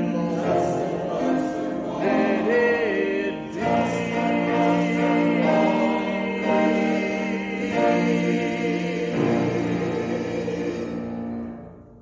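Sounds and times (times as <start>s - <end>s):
church choir singing chords: 0.0s - 12.0s.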